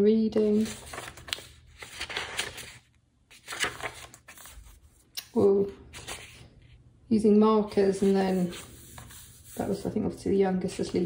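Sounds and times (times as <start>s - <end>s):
paper pages rustling: 0.4s - 6.8s, 7.8s - 9.9s.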